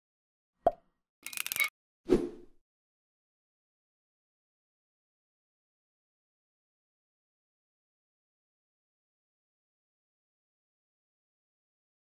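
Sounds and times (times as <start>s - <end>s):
sharp click: 1.2s - 1.7s.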